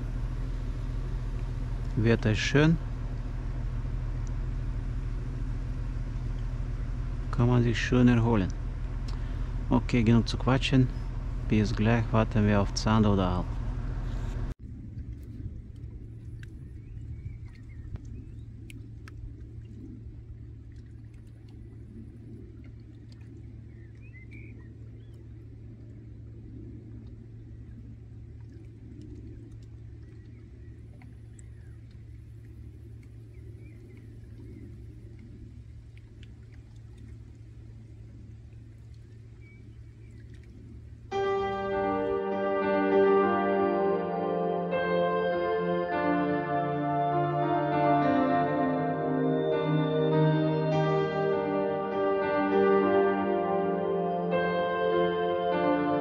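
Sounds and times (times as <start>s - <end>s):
low outdoor rumble: 0.0s - 56.0s
music: 41.1s - 56.0s.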